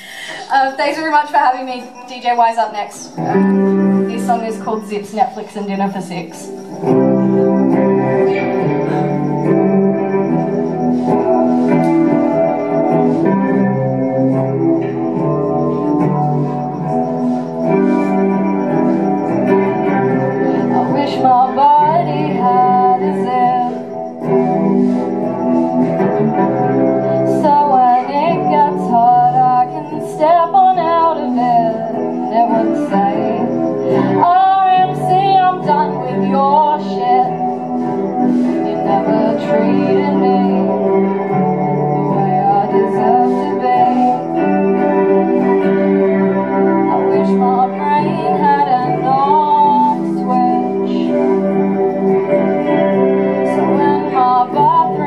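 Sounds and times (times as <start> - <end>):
woman singing: 0.0 - 10.3, 19.2 - 25.0, 25.8 - 55.0
electric guitar strumming: 0.0 - 55.0.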